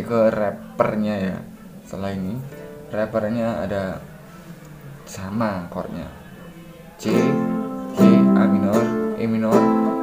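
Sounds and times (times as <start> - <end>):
nylon-string guitar strum: 7.0 - 10.0.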